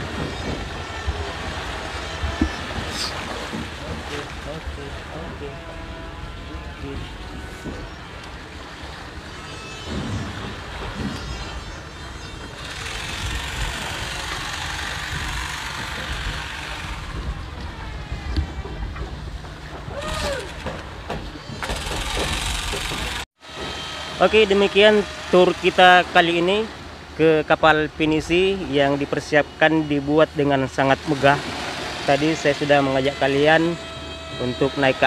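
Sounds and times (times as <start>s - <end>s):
wind on microphone: 0.0s - 20.6s.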